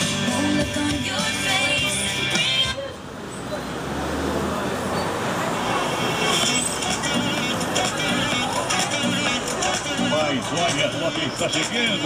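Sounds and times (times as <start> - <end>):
faint voices: 0.3 - 12.0.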